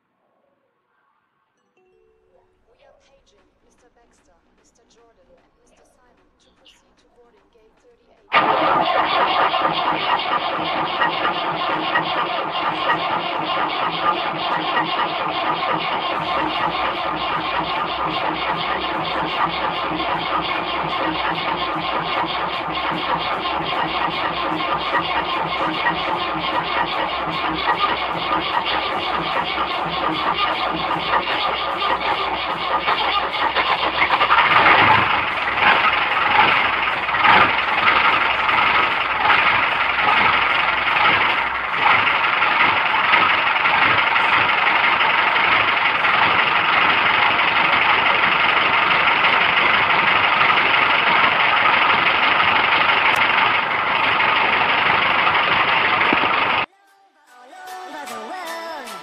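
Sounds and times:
tractor diesel engine starting: 8.3s - 56.7s.

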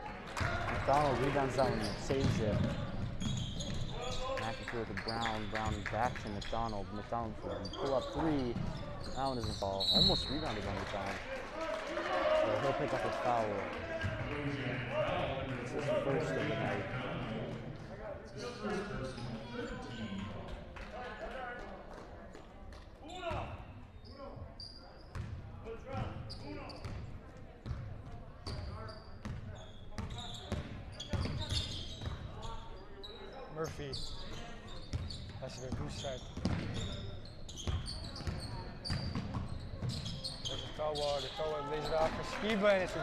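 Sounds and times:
sneakers squeaking: 1.3s - 11.1s, 23.0s - 27.8s, 28.4s - 42.3s.

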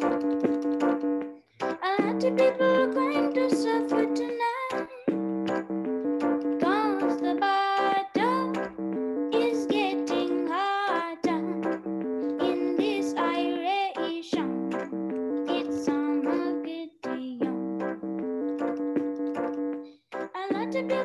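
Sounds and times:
electronic keyboard chords: 0.0s - 21.0s
boy singing: 1.8s - 5.1s, 6.6s - 8.6s, 9.4s - 11.6s, 12.3s - 14.6s, 15.5s - 17.6s, 20.4s - 21.0s.

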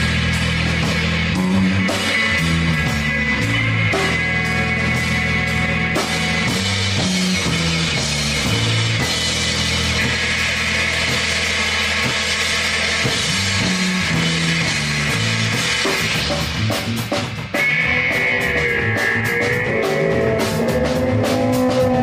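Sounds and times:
drum kit: 0.0s - 22.0s
electric bass line: 0.0s - 22.0s.

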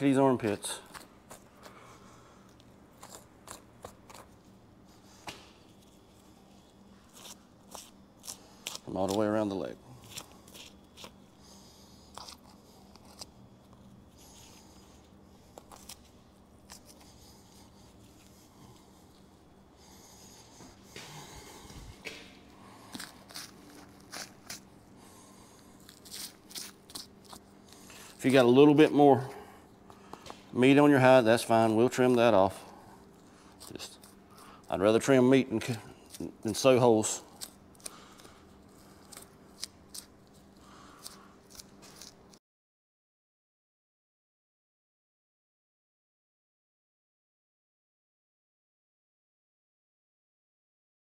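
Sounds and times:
hide tearing and scraping: 22.9s - 24.7s.

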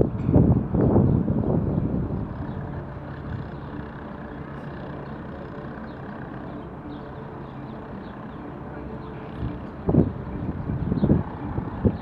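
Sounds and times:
distant city traffic rumble: 0.0s - 12.0s.

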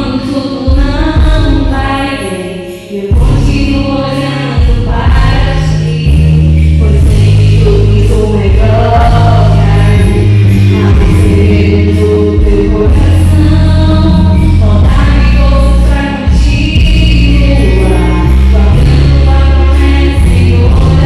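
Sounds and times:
bass-heavy accompaniment: 0.0s - 21.0s
women singing gospel: 0.0s - 21.0s.

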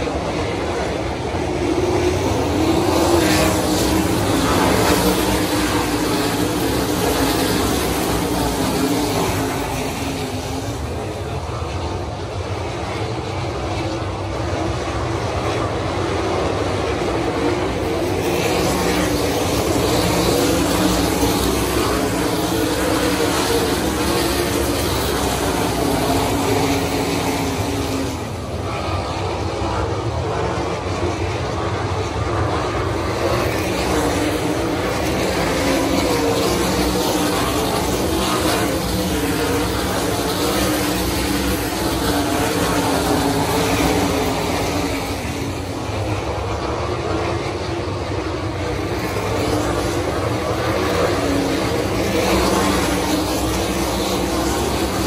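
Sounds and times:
race cars high revving drone: 0.0s - 55.0s.

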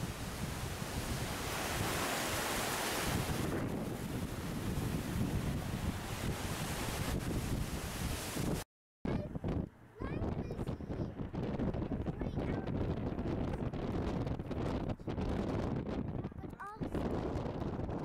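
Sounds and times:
ocean surf rushing: 0.0s - 8.6s
gusty wind buffeting microphone: 0.0s - 18.0s.

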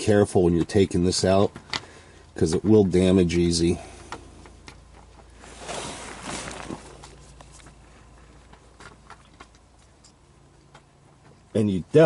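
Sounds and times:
soft rustling: 4.4s - 10.1s.

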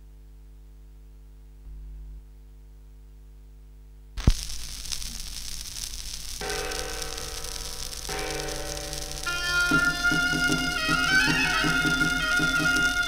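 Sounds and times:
record surface crackle: 4.2s - 13.0s
recorded music: 4.2s - 13.0s
stylus dropping onto record: 4.2s - 13.0s.

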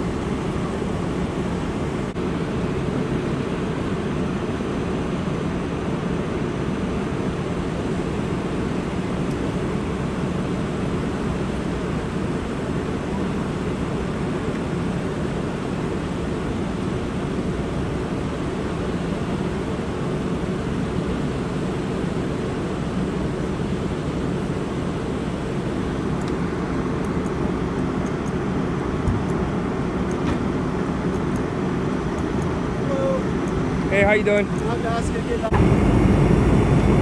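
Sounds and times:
fire engines running: 0.0s - 37.0s.

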